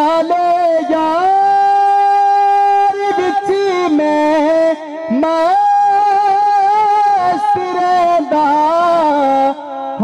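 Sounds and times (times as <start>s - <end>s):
man singing long note: 0.0s - 10.0s.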